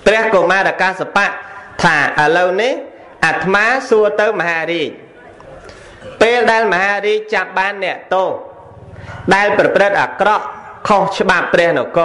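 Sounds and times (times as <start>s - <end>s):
man preaching: 0.0s - 5.2s, 6.0s - 8.6s, 9.2s - 12.0s.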